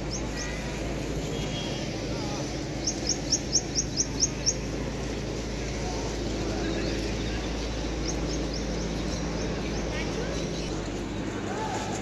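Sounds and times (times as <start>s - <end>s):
outdoor background hum: 0.0s - 12.0s
small bird chirping: 2.7s - 4.8s.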